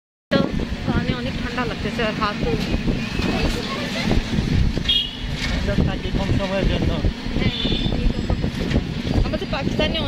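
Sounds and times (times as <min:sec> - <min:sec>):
rumbling vehicle and road noise: 0:00.3 - 0:10.0
voices talking: 0:00.3 - 0:10.0.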